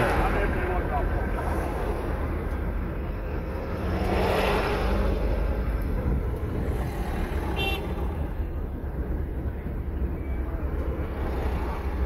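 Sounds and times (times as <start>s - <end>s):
car engine and road noise: 0.0s - 12.0s
traffic noise: 0.0s - 12.0s.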